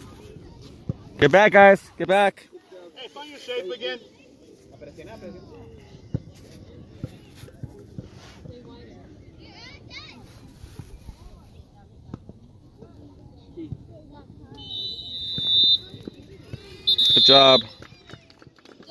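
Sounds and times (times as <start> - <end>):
referee's whistle blast: 14.6 - 16.0, 16.8 - 17.8.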